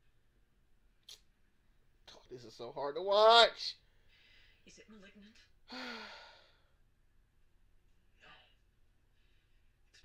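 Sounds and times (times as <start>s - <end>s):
man sighing: 5.7s - 6.6s.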